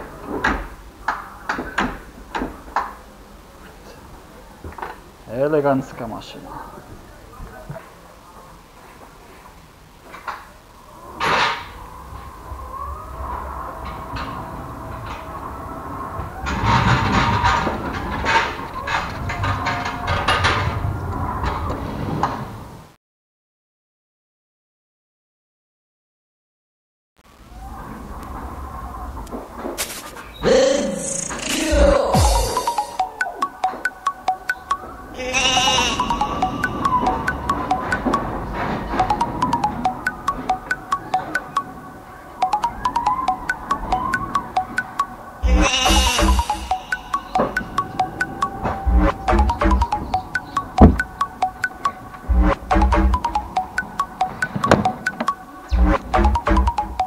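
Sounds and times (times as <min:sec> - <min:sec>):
plucked mallet-like background music: 0:31.8 - 0:38.3, 0:39.0 - 0:41.7, 0:42.4 - 0:57.0
wavering sheep-like bleat: 0:35.2 - 0:36.3, 0:45.4 - 0:46.4.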